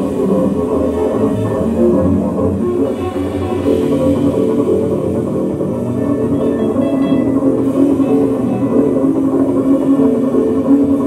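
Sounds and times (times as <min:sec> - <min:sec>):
drums playing: 0:01.0 - 0:11.0
upright bass: 0:01.2 - 0:09.6.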